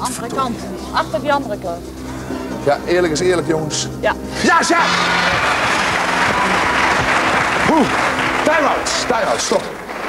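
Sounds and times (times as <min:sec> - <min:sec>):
audience applauding: 0:04.6 - 0:10.0.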